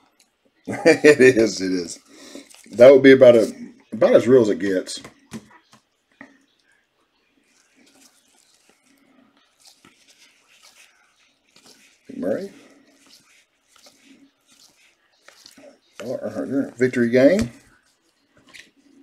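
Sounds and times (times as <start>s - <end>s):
cards clicking and rustling: 7.5s - 19.0s.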